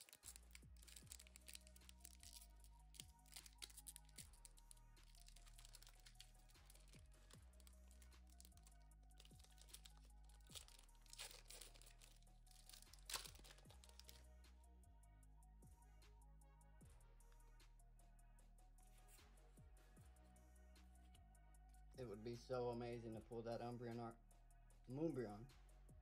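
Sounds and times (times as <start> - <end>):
foil pack crinkling and tearing: 0.0 - 14.2
quiet background music with bass: 0.0 - 26.0.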